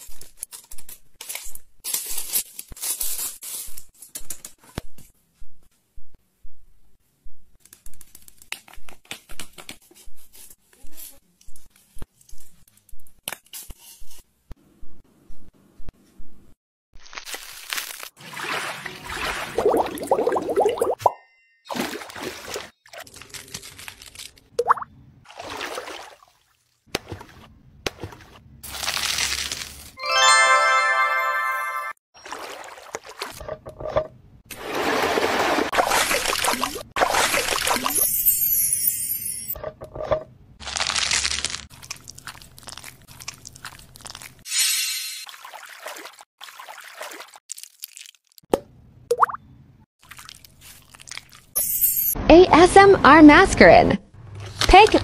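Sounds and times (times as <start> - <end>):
crackly crunching with sticky clicks: 40.8 - 44.4.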